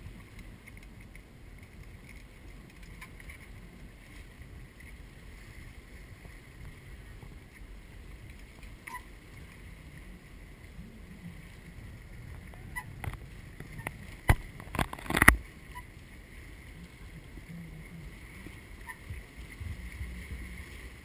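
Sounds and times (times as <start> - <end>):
waves lapping against rocks: 0.0 - 21.0
wind rumble on microphone: 0.0 - 21.0.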